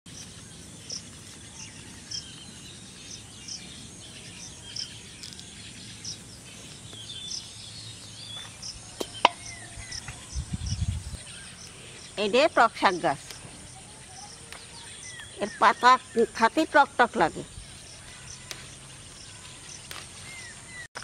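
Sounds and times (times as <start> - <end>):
high insect drone: 0.1 - 20.9
bird chirping high: 0.1 - 21.0
birds calling: 0.1 - 21.0.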